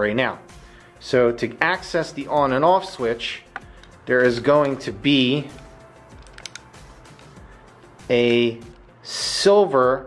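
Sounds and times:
faint background music: 0:00.0 - 0:10.0
plastic figure parts clicking: 0:03.5 - 0:04.8, 0:05.5 - 0:07.4.

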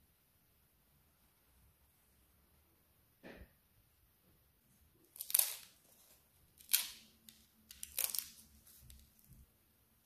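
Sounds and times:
bread crust crackling: 0:04.9 - 0:09.5.

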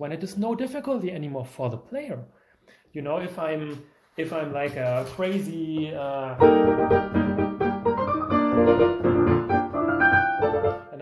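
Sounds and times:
piano playing: 0:05.9 - 0:11.0.

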